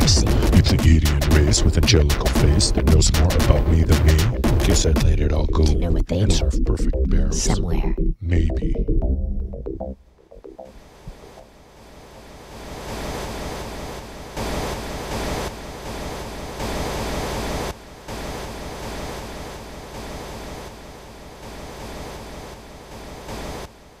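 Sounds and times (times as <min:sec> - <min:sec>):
steady rushing noise: 0:10.7 - 0:24.0.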